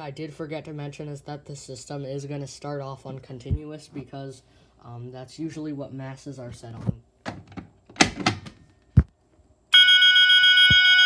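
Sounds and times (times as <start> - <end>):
alarm sounder continuous tone: 9.7 - 11.0
fire alarm pull station clunk: 9.8 - 11.0.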